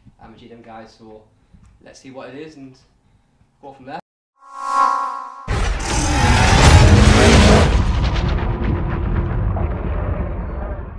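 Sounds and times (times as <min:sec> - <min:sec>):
loud boom with rumbling tail: 0:05.5 - 0:10.9.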